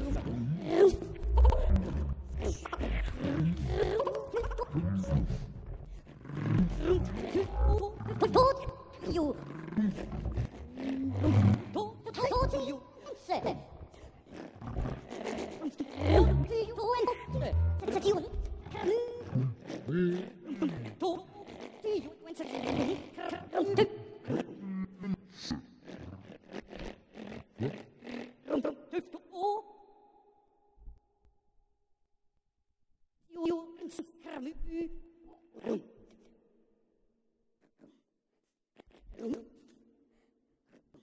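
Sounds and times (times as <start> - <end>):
gliding processed vocal tones: 0.0 - 29.3.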